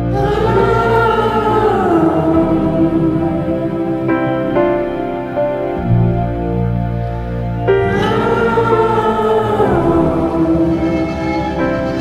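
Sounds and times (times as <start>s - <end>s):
wordless choir-like voices: 0.0s - 5.9s, 7.6s - 12.0s
low keyboard drone: 0.0s - 12.0s.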